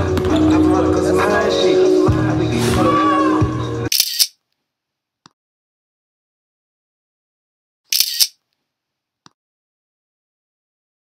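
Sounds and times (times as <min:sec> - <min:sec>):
camera shutter click: 0:03.9 - 0:04.4, 0:07.9 - 0:08.4.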